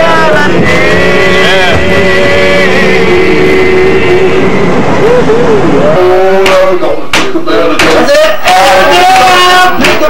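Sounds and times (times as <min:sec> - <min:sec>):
subway car running: 0:00.0 - 0:10.0
voices holding a long note: 0:00.0 - 0:10.0.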